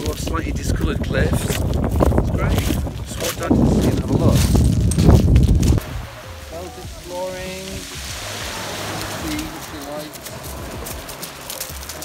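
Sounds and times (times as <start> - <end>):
waves washing up a shingle beach: 5.8 - 12.0.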